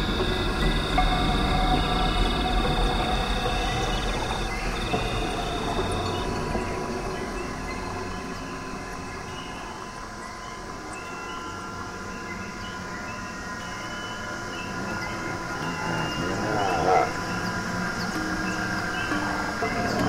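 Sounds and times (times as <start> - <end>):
droning electronic music: 0.0 - 20.0.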